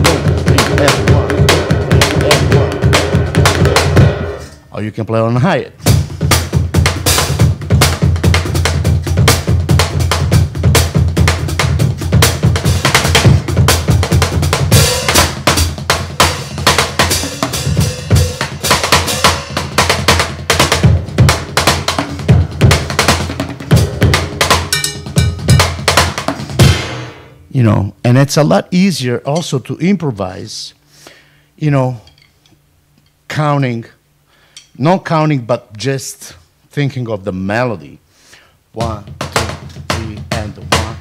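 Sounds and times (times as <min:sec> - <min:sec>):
acoustic drum kit groove: 0:00.0 - 0:27.8, 0:28.4 - 0:30.1, 0:38.2 - 0:41.0.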